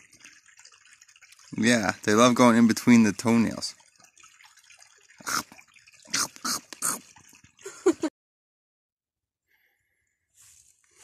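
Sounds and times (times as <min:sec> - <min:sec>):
stream water trickling: 0:00.0 - 0:08.1
water splashing and dripping: 0:00.0 - 0:08.1.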